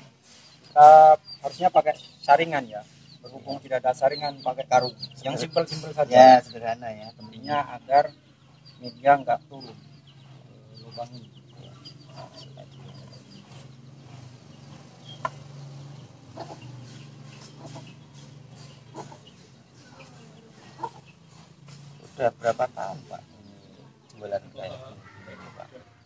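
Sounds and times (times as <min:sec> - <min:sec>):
chicken clucking: 0:00.0 - 0:26.0.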